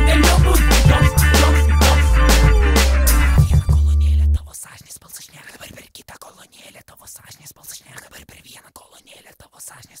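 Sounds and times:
person whispering: 0:03.7 - 0:10.0.

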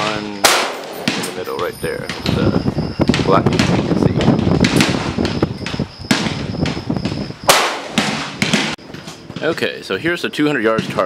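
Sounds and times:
rifle gunshots with echo: 0:00.0 - 0:02.3, 0:06.1 - 0:06.8, 0:07.4 - 0:08.8.

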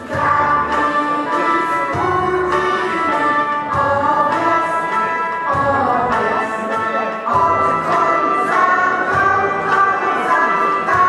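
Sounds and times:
group singing held notes: 0:00.0 - 0:11.0.

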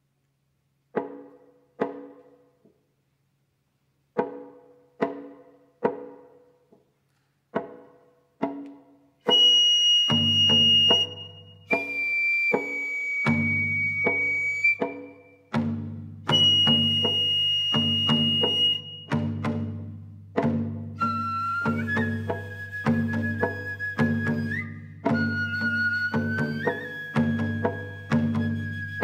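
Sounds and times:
shamisen plucked notes: 0:04.2 - 0:06.5, 0:07.5 - 0:29.0
bamboo flute long high notes: 0:09.2 - 0:15.4, 0:16.3 - 0:19.3, 0:21.0 - 0:29.0.

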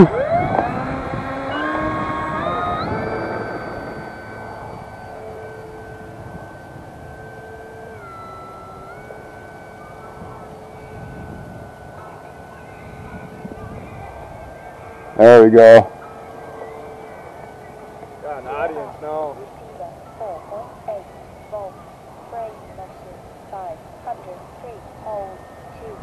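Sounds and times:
electric model plane motor whining: 0:00.0 - 0:19.8.

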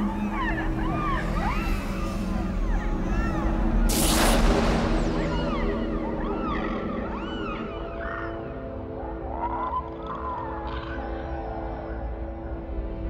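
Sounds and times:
dolphins whistling underwater: 0:00.0 - 0:09.5.

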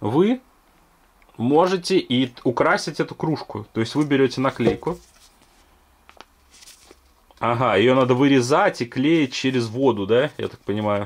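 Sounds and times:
paper sticker sheet rustling: 0:04.0 - 0:05.6, 0:06.4 - 0:07.2.

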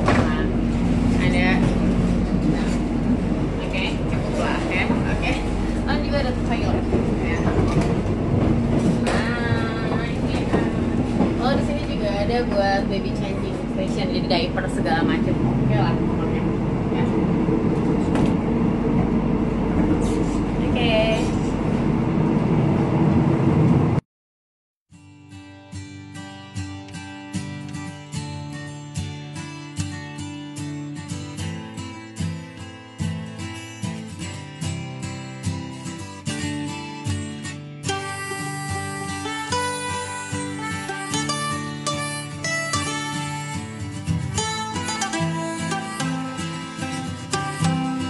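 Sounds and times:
train carriage hum and rumble: 0:00.0 - 0:24.0, 0:38.0 - 0:48.0
faint voices: 0:09.0 - 0:17.2.

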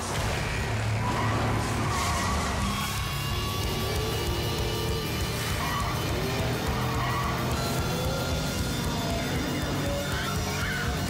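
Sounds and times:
car engine revving: 0:00.0 - 0:11.0
soundtrack music: 0:00.0 - 0:11.0
tyre squeal: 0:00.9 - 0:11.0.

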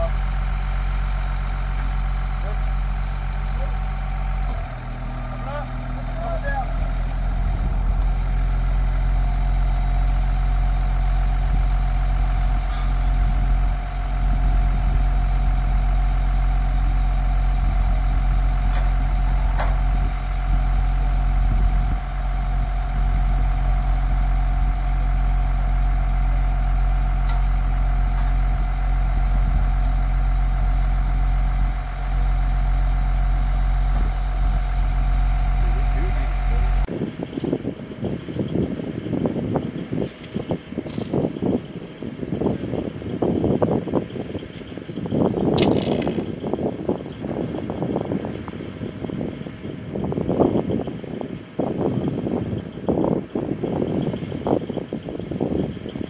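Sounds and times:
diesel truck engine idling: 0:00.0 - 0:56.0.

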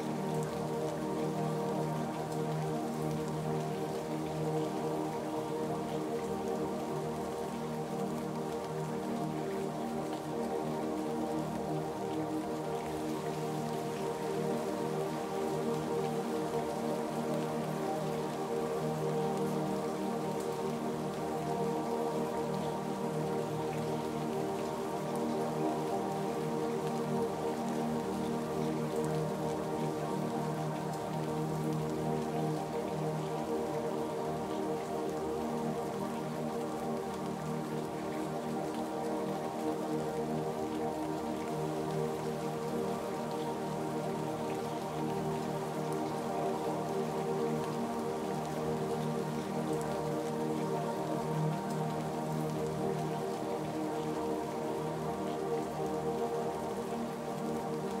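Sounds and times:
slow ambient music: 0:00.0 - 0:58.0
steady rainfall: 0:00.0 - 0:58.0.

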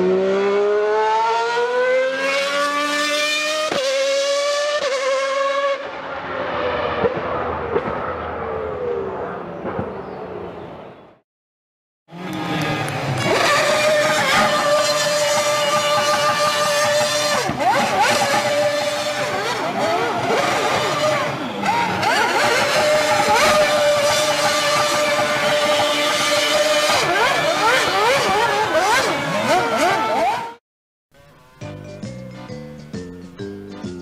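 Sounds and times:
high-revving racing car engine: 0:00.0 - 0:09.6, 0:12.1 - 0:30.6
music: 0:31.2 - 0:34.0.

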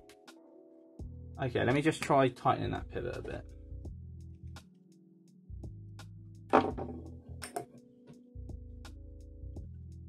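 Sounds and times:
knife handling knocks: 0:06.5 - 0:08.2.

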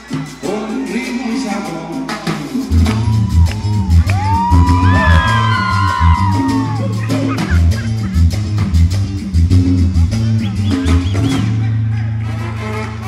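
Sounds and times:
percussion: 0:00.0 - 0:13.0
singer shouting: 0:02.7 - 0:08.2
electric bass line: 0:02.7 - 0:13.0
keyboard: 0:02.8 - 0:13.0.

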